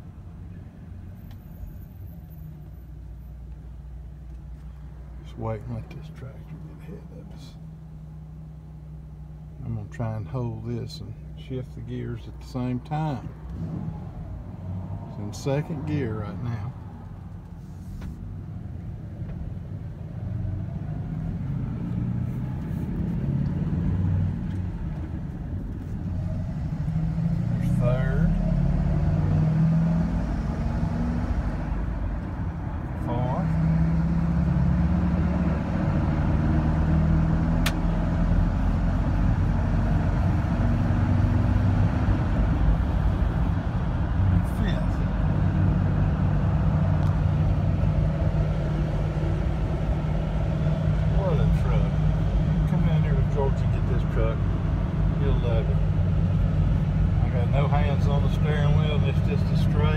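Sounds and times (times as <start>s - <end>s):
road noise: 0.0s - 59.9s
truck engine accelerating: 12.2s - 59.9s.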